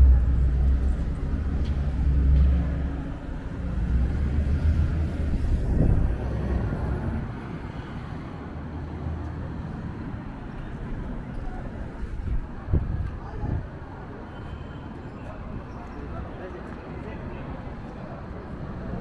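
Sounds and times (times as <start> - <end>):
street hum: 0.0 - 19.0
traffic engine rumble: 0.0 - 19.0.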